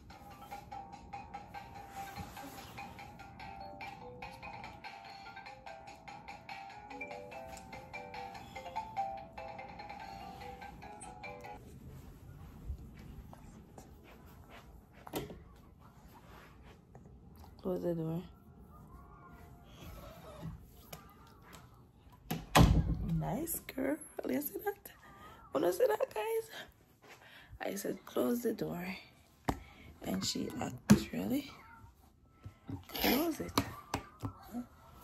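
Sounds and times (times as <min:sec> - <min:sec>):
soft handling rustles: 0:11.6 - 0:17.6.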